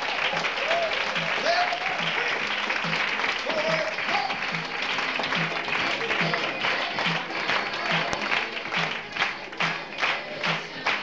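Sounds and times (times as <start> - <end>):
audience clapping in rhythm: 0.0 - 11.0
music with low beat: 1.1 - 11.0.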